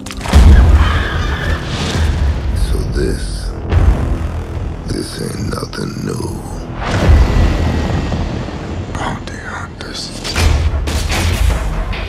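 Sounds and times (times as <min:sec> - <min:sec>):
spacecraft whoosh and rumble: 0:06.4 - 0:12.0.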